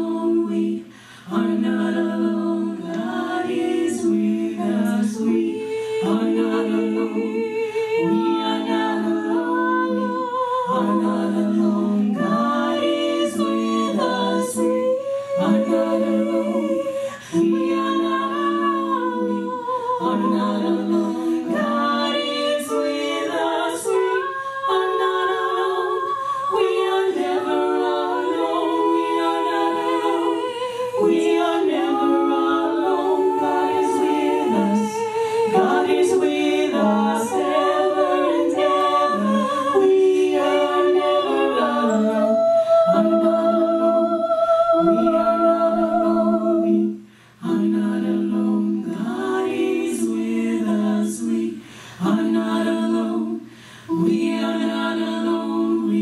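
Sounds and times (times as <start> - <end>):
female vocal quartet singing: 0.0 - 56.0.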